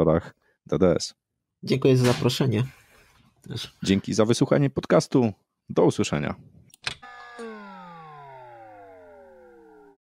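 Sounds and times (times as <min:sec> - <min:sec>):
electronic tone sliding downward: 0:07.0 - 0:10.0.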